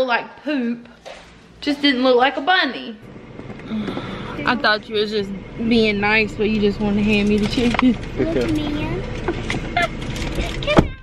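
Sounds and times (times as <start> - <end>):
vehicle rumbling: 1.2 - 11.0.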